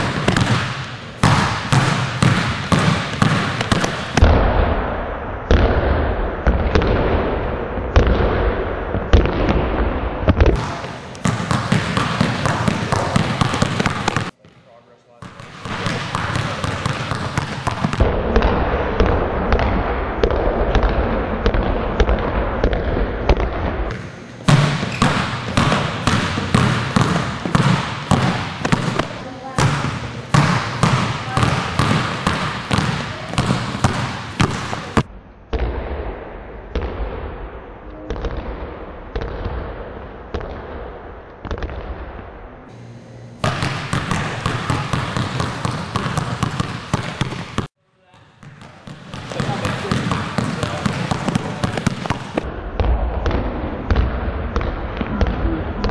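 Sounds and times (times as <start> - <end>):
basketballs dribbled on hardwood floor: 0.0 - 4.3, 10.3 - 35.1, 43.4 - 55.9
low steady hum: 0.0 - 55.9.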